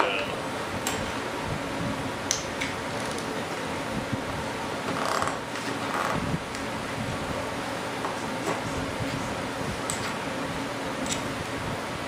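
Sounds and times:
workshop background hum: 0.0 - 12.0.

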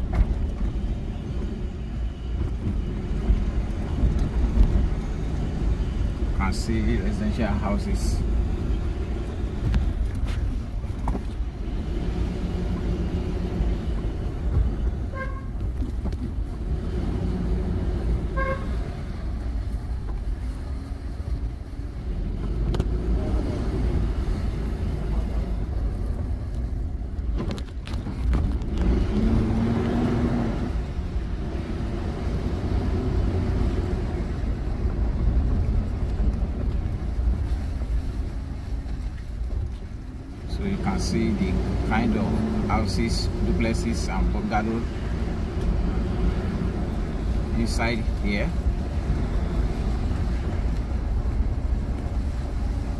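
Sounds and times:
car engine and tyre rumble: 0.0 - 52.9.

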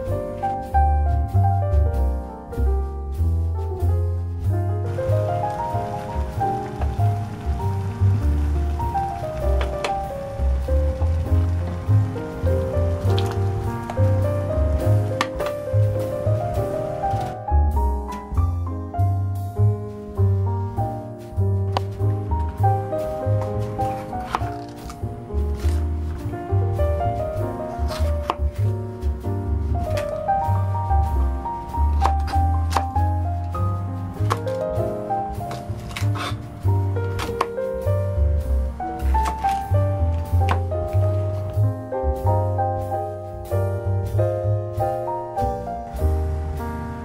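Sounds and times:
piano music: 0.0 - 47.0
water boiling in a pot: 5.3 - 15.1
knife cutting cabbage on board: 27.8 - 28.7, 35.5 - 36.4.

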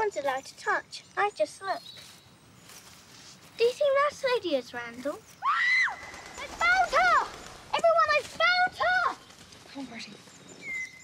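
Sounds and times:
people shouting calls in woods: 5.4 - 10.1.

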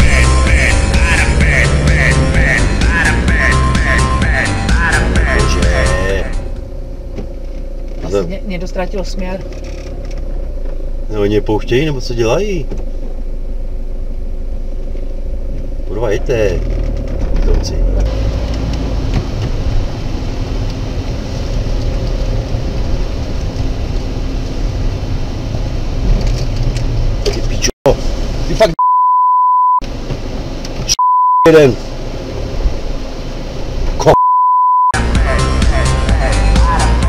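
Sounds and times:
man talking: 0.0 - 6.5, 11.1 - 12.8, 15.9 - 16.8, 17.4 - 18.1, 31.4 - 31.8
car cabin rumble: 0.0 - 29.0
vehicle engine and road noise: 0.0 - 37.0
censor bleep: 28.8 - 29.8, 30.9 - 31.5, 34.1 - 35.0.

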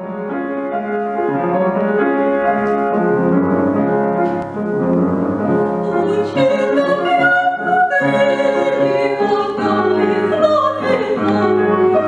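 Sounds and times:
classical piano piece: 0.0 - 12.0.

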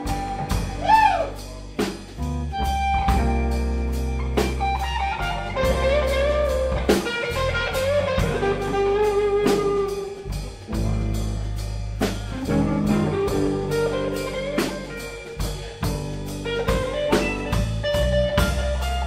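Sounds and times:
bass guitar: 0.0 - 19.0
lead electric guitar with bent notes: 0.0 - 19.0
steady drum beat: 0.0 - 19.0.

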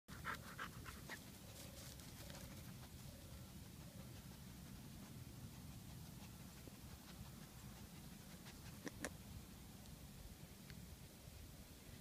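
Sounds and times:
dog panting: 0.1 - 1.6, 2.3 - 9.1.

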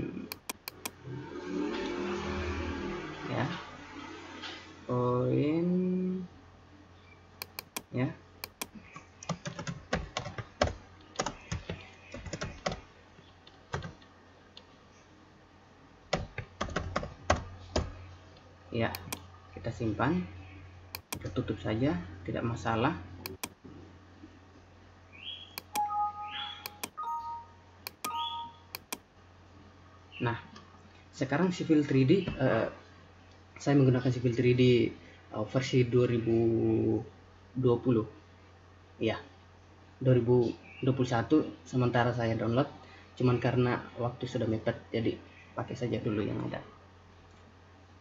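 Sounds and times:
typing on a keyboard: 0.3 - 0.9, 7.4 - 12.8, 13.4 - 14.0, 16.1 - 17.9, 23.3 - 23.6, 25.6 - 25.9, 26.7 - 27.0, 27.9 - 28.2, 28.8 - 29.0
computer mouse clicks: 0.3 - 1.0, 7.4 - 9.5, 18.9 - 19.2, 20.9 - 21.4, 23.2 - 23.6, 25.6 - 25.9, 26.6 - 27.0, 27.9 - 29.0
two-pitch electronic beeps: 25.6 - 29.0.

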